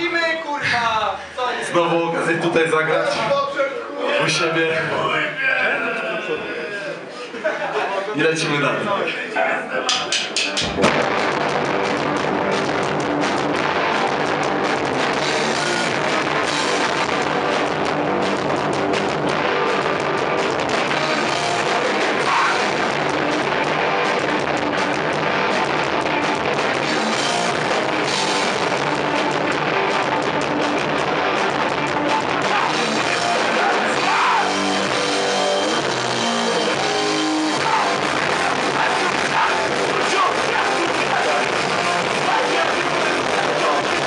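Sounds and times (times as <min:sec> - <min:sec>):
hardcore band playing live: 0:09.9 - 0:44.0.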